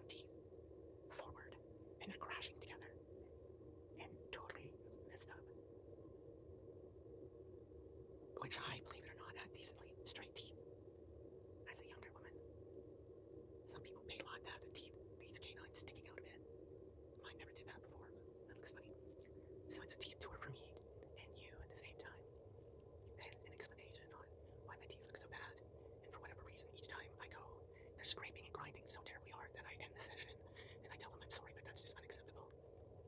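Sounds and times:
breathy whispering: 0.0 - 0.3, 1.1 - 3.0, 4.0 - 5.5, 8.4 - 10.5, 11.6 - 12.4, 13.7 - 16.4, 17.2 - 22.2, 23.1 - 32.5.

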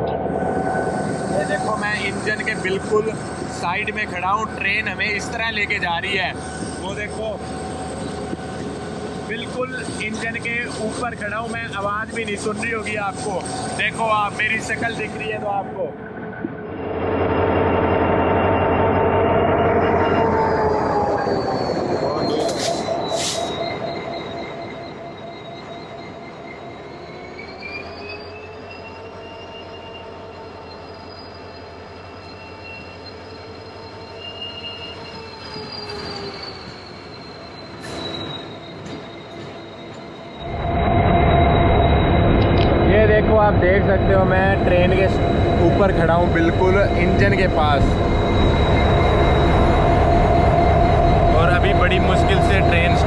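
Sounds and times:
locomotive engine drone: 0.0 - 53.0
train wheels squealing: 0.0 - 53.0.

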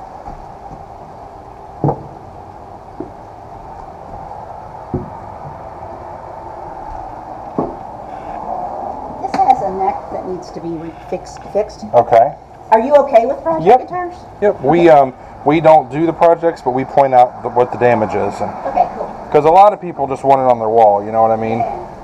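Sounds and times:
steady hum: 0.0 - 22.0
guitars knocking against wooden wall: 1.8 - 2.3, 4.9 - 5.6, 7.6 - 7.8.

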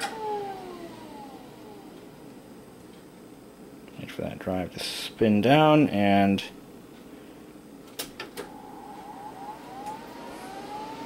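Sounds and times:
hard drive spinning down whine: 0.0 - 2.8, 8.2 - 11.0.

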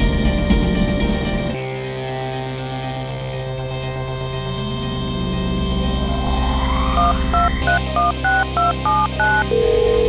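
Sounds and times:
touch-tone keypad beeps: 7.0 - 9.7.

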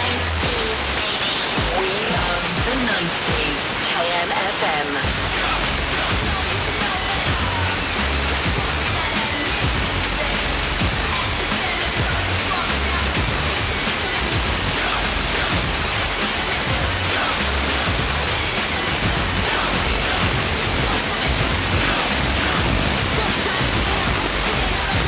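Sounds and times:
faint radio music: 0.0 - 25.0
radio static hiss: 0.0 - 25.0.

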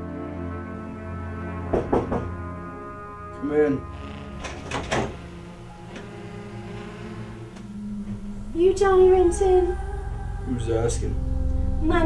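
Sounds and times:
low background music: 0.0 - 12.0
door latch and door opening: 4.4 - 7.7.

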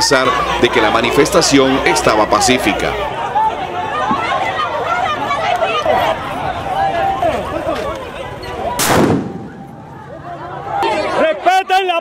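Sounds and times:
crowd voices: 0.0 - 12.0
loud bang: 8.8 - 10.0.

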